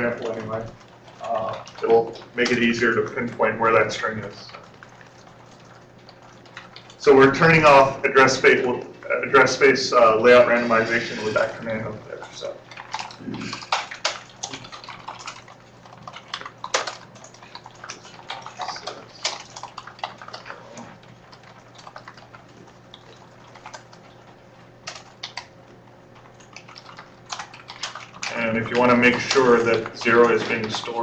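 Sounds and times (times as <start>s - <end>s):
computer keyboard keys clicking: 0.0s - 7.7s, 12.2s - 25.5s, 26.2s - 31.0s.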